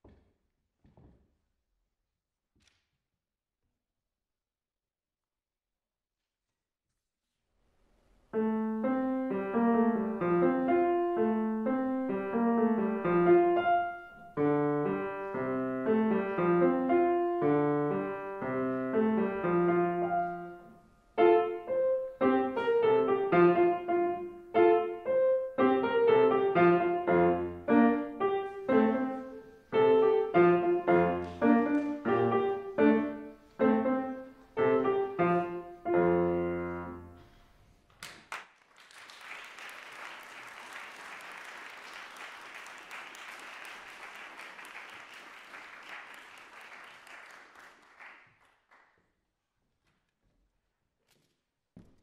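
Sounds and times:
grand piano playing: 8.4s - 37.4s.

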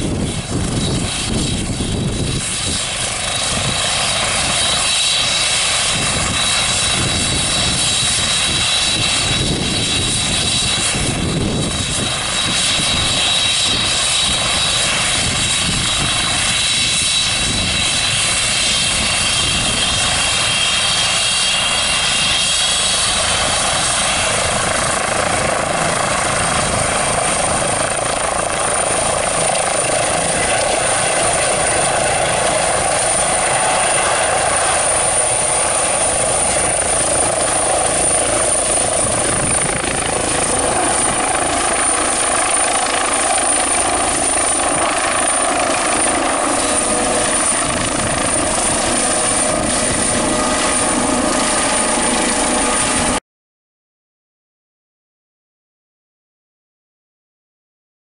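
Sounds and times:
helicopter rotor and turbines: 0.0s - 53.2s.

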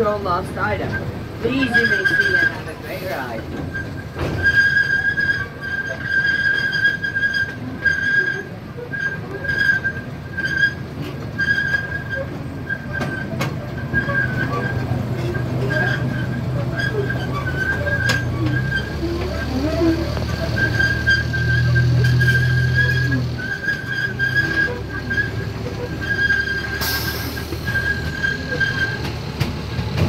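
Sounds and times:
miniature train rumbling on track: 0.0s - 30.0s
high steady squeal: 0.8s - 29.8s.

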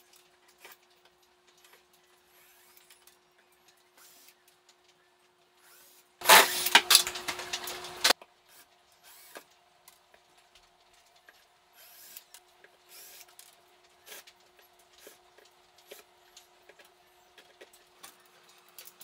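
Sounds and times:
faint clicks and knocks: 7.1s - 19.0s
cordless drill running: 9.0s - 9.4s.

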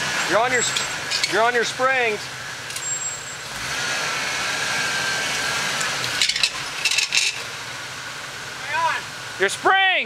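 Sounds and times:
engine working under load: 0.0s - 10.0s.

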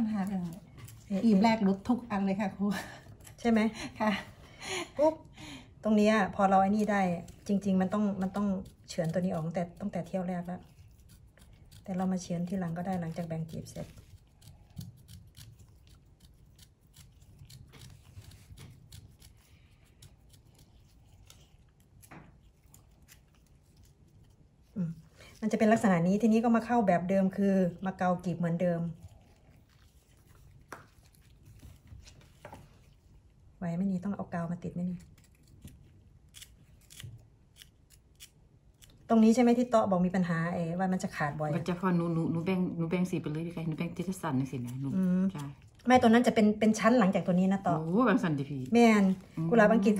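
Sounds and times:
knife slicing radish: 0.0s - 2.4s, 5.9s - 23.3s, 36.3s - 38.4s.

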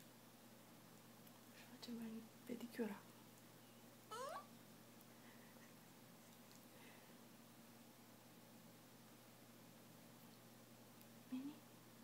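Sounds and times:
puppy whining: 4.1s - 4.6s.

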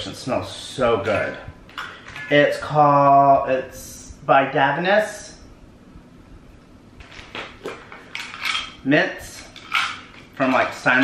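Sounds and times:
containers clinking and rattling: 7.6s - 8.8s, 9.4s - 11.0s.

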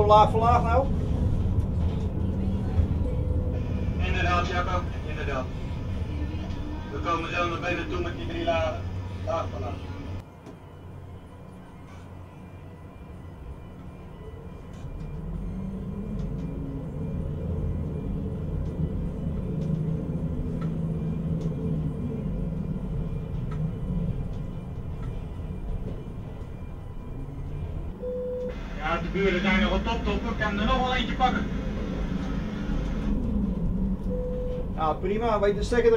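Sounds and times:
crane machinery drone: 0.0s - 35.9s.

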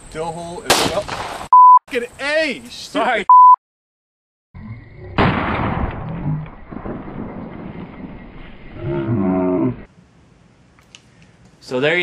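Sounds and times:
loud bang: 5.2s - 8.5s.

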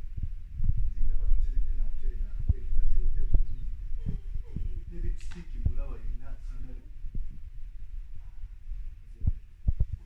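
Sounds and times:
dull low thumps: 0.0s - 10.0s
steady low hum: 0.0s - 10.0s.

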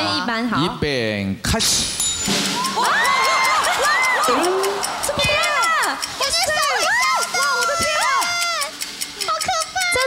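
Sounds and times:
people exclaiming excitedly: 2.5s - 8.8s.

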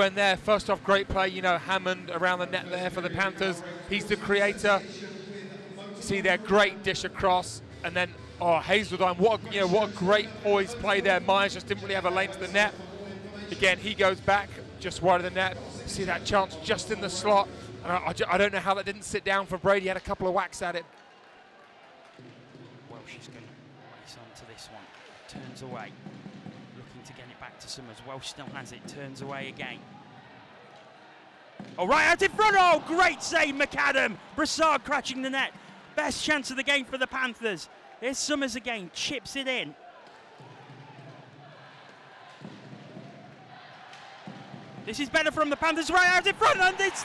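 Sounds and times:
faint crowd noise: 0.0s - 20.9s, 22.0s - 47.0s.

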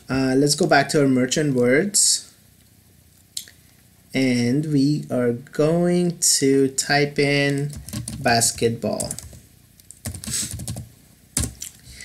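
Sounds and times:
typing on computer keyboard: 7.6s - 8.2s, 9.0s - 11.7s.

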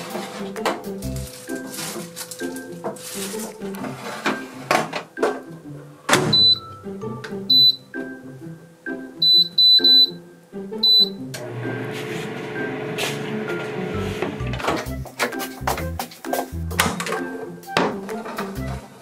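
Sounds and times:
background music: 0.0s - 19.0s
high electronic beeps: 6.4s - 6.7s, 7.5s - 7.9s, 9.2s - 10.2s.

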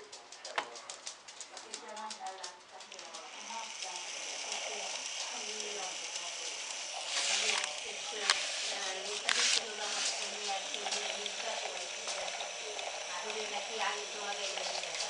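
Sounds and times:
motor clicks: 0.5s - 15.0s
model train motor whining: 2.8s - 15.0s.

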